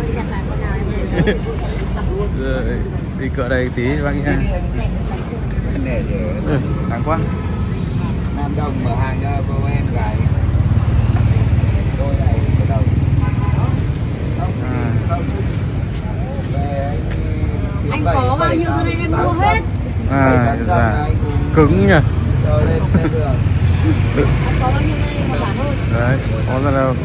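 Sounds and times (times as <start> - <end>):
people talking: 0.0 - 7.3, 11.1 - 27.0.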